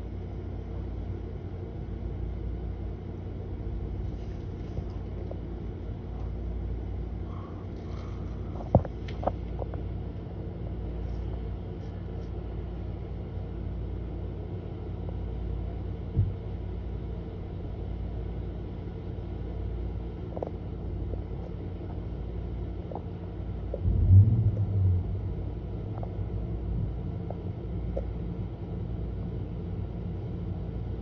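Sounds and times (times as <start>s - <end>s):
engine idling: 20.0s - 31.0s.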